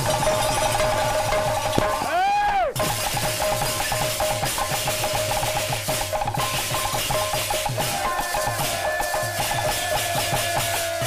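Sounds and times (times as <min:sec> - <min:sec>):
brass hand cymbals: 0:00.0 - 0:02.1, 0:02.8 - 0:11.0
barrel drum beaten fast: 0:00.0 - 0:11.0
steady held high tone: 0:07.7 - 0:11.0.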